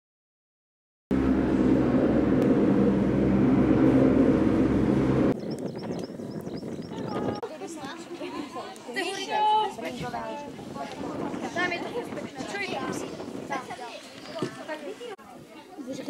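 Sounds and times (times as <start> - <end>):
lift machinery humming: 1.1 - 5.4
distant voices: 1.2 - 6.0.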